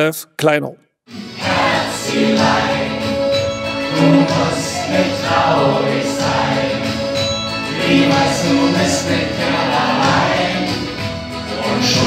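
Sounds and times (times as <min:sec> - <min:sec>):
person singing: 0:01.1 - 0:07.1
live band with guitar: 0:01.2 - 0:12.0.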